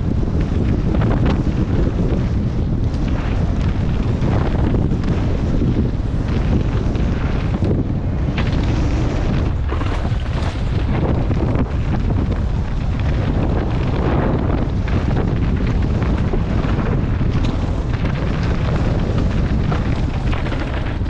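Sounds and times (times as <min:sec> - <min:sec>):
bike knocks and rattles: 0:00.0 - 0:21.0
tyre roar on dirt: 0:00.0 - 0:21.0
wind rushing over microphone: 0:00.0 - 0:21.0.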